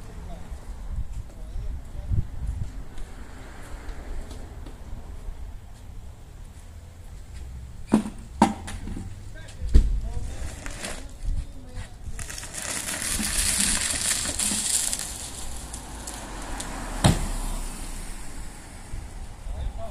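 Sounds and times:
tub scraping along concrete: 10.0s - 17.6s.

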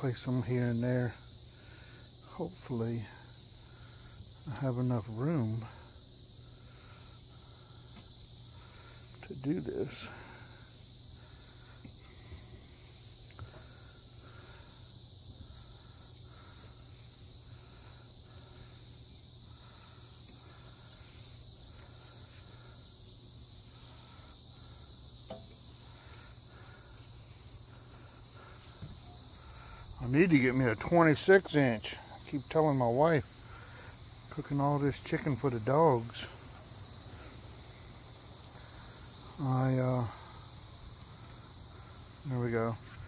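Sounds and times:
high-pitched insect chorus: 0.0s - 43.0s.

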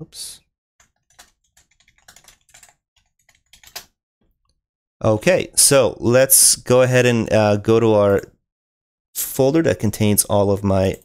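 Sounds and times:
keyboard typing: 0.8s - 4.0s.

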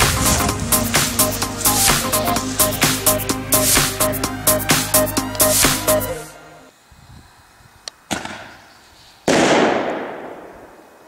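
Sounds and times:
firework launch crack: 8.1s - 11.0s
firework bang: 9.3s - 10.8s.

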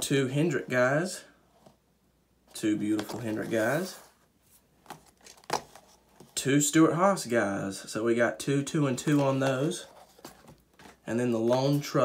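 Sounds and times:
packaging clicks and rustles: 4.9s - 5.9s.

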